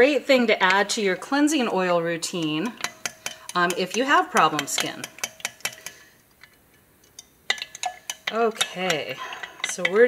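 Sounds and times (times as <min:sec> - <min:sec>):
spoon clinking against glass: 0:07.2 - 0:10.0.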